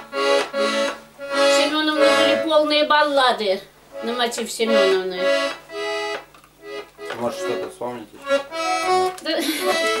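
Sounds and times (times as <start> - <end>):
button accordion chords: 0.0 - 10.0.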